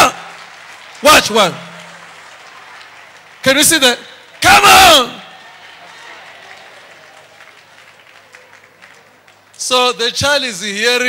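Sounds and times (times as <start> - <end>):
faint applause: 0.0 - 9.7.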